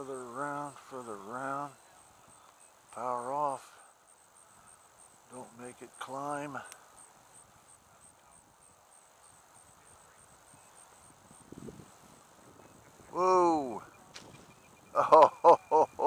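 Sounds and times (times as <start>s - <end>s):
person's drawn-out wordless exclamation: 13.1s - 13.8s.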